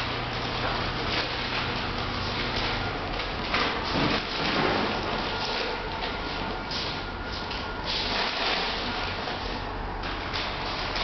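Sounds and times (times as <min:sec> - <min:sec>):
motorised mechanism rustling and scraping: 0:00.0 - 0:11.0.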